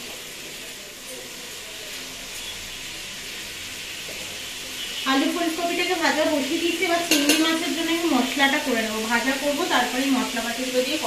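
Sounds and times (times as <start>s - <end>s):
food frying sizzling hiss: 0.0s - 11.0s.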